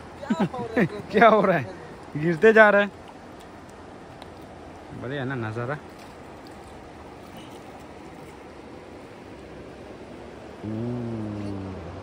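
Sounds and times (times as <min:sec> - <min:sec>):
river current rushing: 0:00.0 - 0:12.0.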